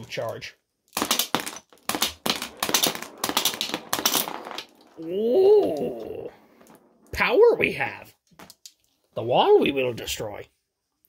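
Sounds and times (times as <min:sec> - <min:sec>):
toy shooter firing marbles: 0:00.9 - 0:05.1
marbles clattering on plastic: 0:00.9 - 0:07.2.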